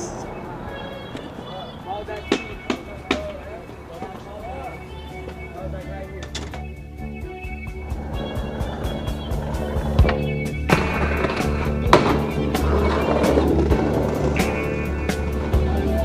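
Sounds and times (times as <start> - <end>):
skateboard wheels rolling on pavement: 0.0 - 16.0
skateboard clacking on rail: 1.0 - 4.5, 8.7 - 14.7
music with bass line: 2.5 - 16.0
skateboard grinding metal rail: 8.0 - 15.7
skateboard landing slap: 10.0 - 14.6.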